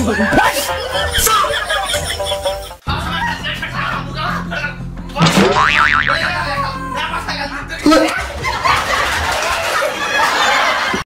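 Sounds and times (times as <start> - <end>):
background music: 0.0 - 9.8
cartoon upward sweep and boing: 5.4 - 6.4.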